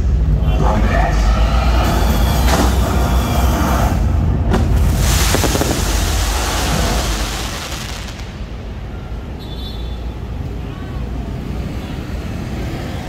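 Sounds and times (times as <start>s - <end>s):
pyrotechnics rumble: 0.0s - 9.6s
hissing rush: 1.4s - 8.9s.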